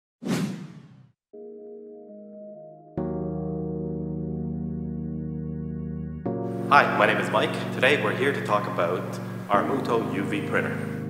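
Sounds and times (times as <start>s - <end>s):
soft keyboard chords music: 1.3s - 11.0s.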